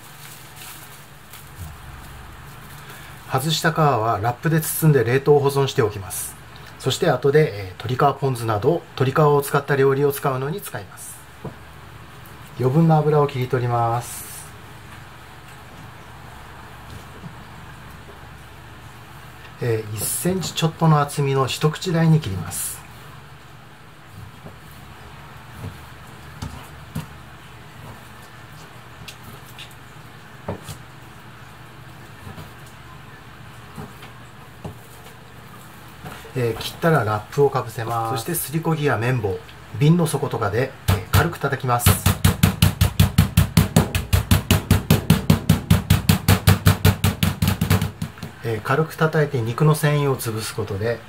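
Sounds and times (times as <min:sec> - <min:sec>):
low steady hum: 0:00.0 - 0:51.0
knife knocking cutting board: 0:41.9 - 0:48.4
wooden pestle tapping meat: 0:41.9 - 0:48.4.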